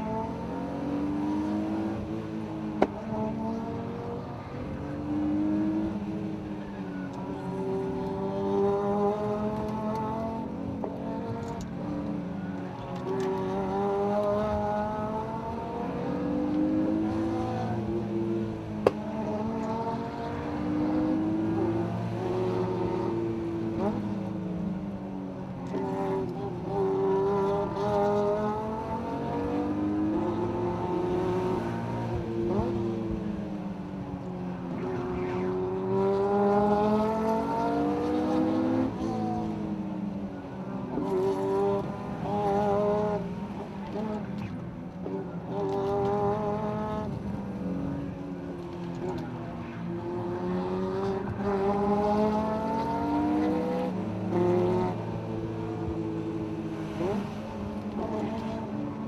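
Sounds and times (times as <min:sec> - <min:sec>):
car engine revving: 0:40.9 - 0:58.8.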